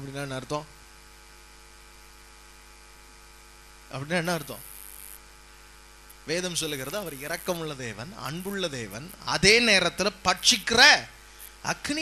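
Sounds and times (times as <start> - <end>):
faint hiss: 0.0 - 0.8, 3.8 - 12.0
electrical mains hum: 0.0 - 12.0.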